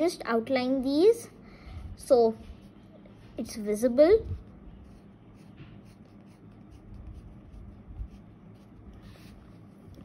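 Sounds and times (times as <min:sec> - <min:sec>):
pencil scratching on paper: 0:04.2 - 0:09.9.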